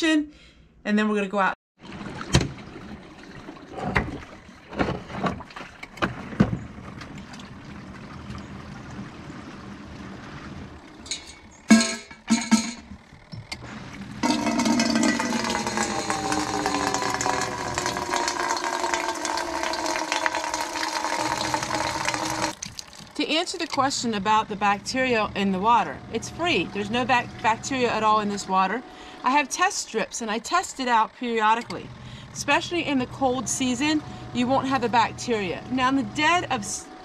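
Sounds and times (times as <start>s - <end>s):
water splashing into metal kettle: 14.2s - 23.8s.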